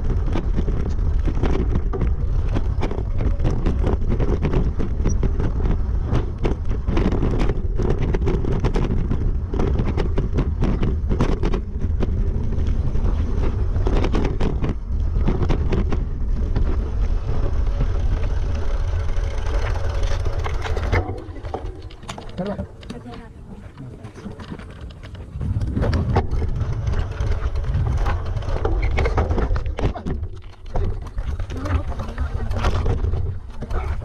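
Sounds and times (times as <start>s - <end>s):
bike rattling over stones: 0.0s - 34.0s
bike tyres rumbling on rocky trail: 0.0s - 34.0s
wind buffeting microphone: 0.0s - 34.0s.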